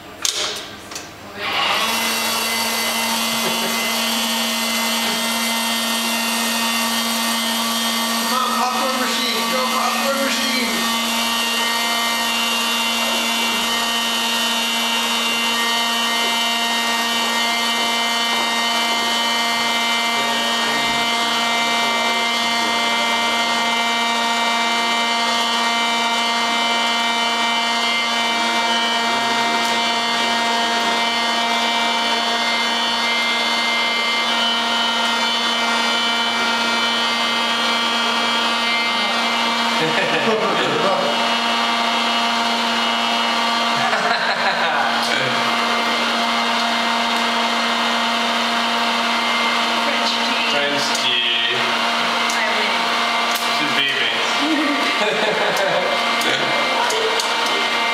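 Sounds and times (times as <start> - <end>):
popcorn machine electric drone: 0.0 - 57.9.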